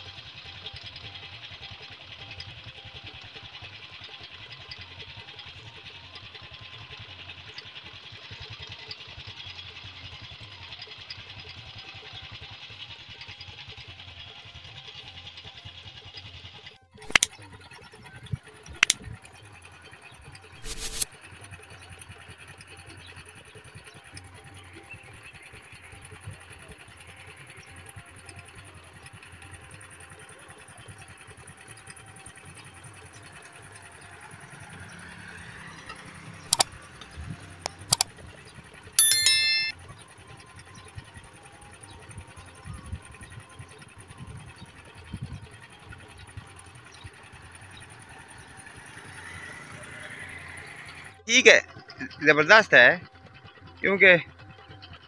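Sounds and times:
small engine running: 0.0 - 39.0, 39.8 - 55.0.

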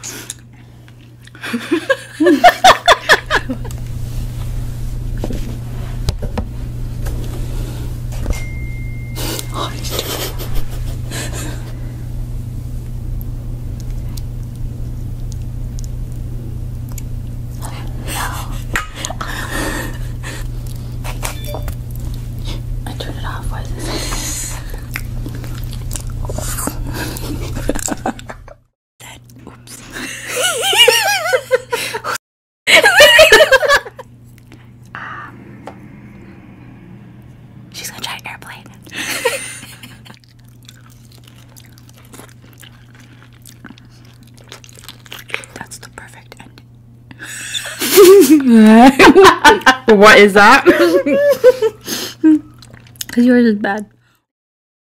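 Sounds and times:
steady low hum: 0.0 - 49.8
biting and chewing: 24.8 - 28.0, 39.9 - 46.7
short voiced sound falling pitch: 34.9 - 37.2.

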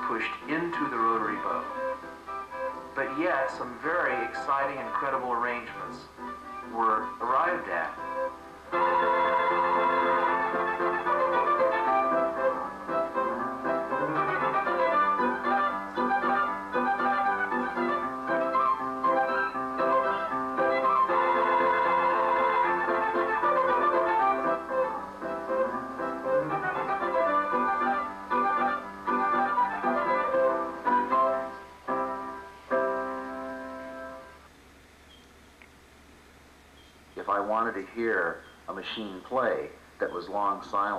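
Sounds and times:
piano accompaniment: 0.0 - 34.5
violins playing: 0.5 - 31.6.

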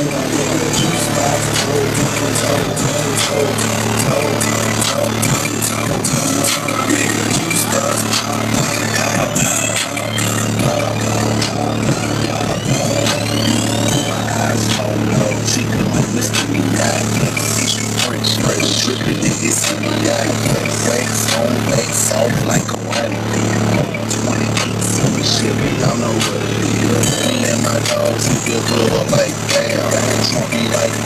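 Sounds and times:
rap music with deep bass: 0.0 - 31.0.

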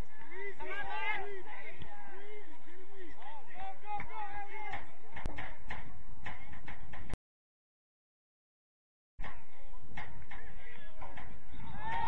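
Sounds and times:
faint voices: 0.0 - 7.1, 9.2 - 12.0.

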